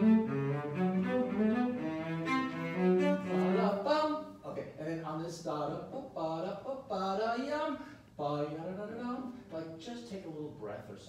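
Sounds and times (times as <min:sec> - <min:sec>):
bowed cello melody: 0:00.0 - 0:04.1.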